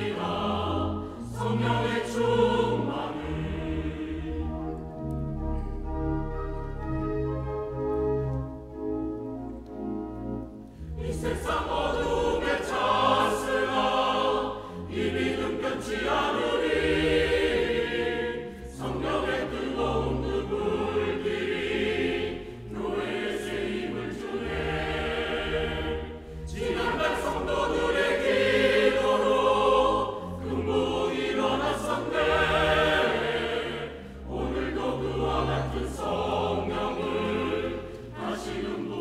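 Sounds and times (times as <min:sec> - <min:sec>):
church choir singing hymn: 0:00.0 - 0:05.2, 0:10.8 - 0:39.0.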